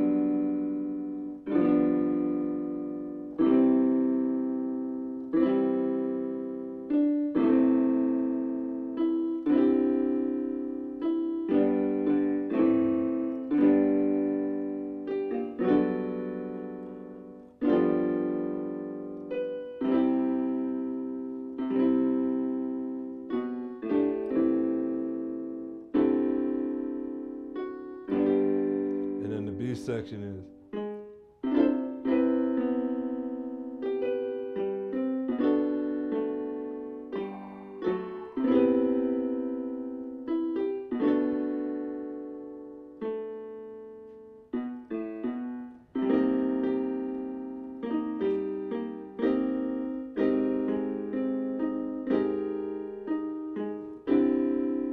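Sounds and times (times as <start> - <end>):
electronic keyboard piano chords: 0.0 - 54.9.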